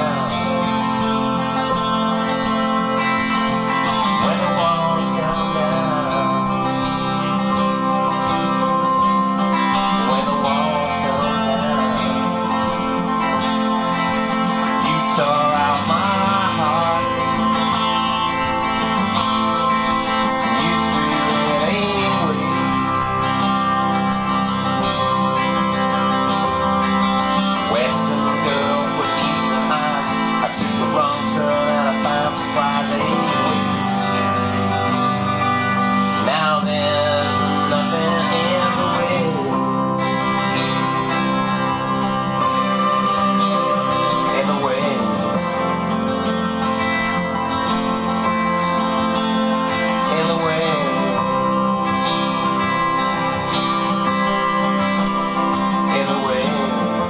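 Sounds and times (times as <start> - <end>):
electric guitar lead: 0.0 - 57.0
person singing: 0.0 - 57.0.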